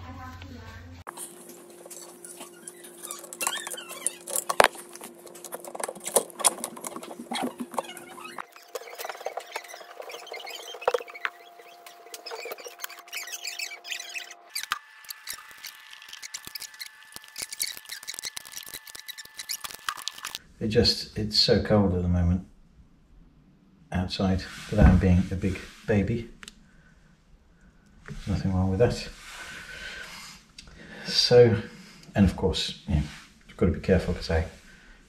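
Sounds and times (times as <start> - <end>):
bicycle crankset and chain rattling: 5.4 - 20.4.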